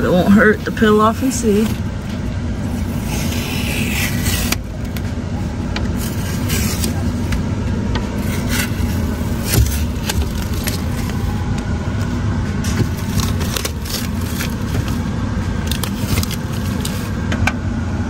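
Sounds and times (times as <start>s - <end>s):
steady low hum: 0.0s - 18.0s
tape being peeled off glass: 2.7s - 5.0s, 6.0s - 7.3s, 8.2s - 11.3s, 12.7s - 15.0s, 15.6s - 17.1s
plastic bag crinkling: 8.2s - 11.4s, 12.8s - 15.0s, 15.6s - 17.1s.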